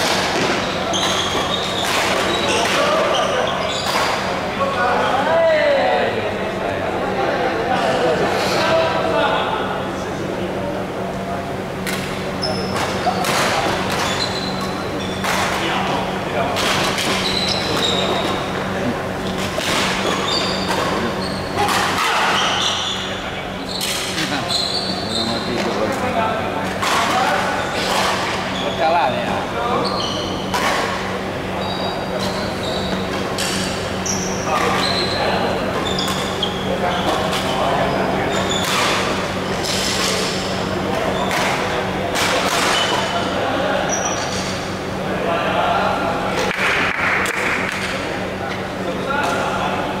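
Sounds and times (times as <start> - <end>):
shoes squeaking on wooden floor: 0.4 - 4.1, 13.9 - 15.3, 16.9 - 25.9, 31.6 - 33.2, 34.0 - 38.8.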